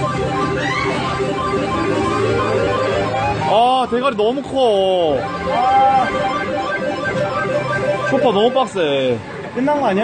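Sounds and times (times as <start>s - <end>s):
looping electronic jingle music: 0.0s - 9.4s.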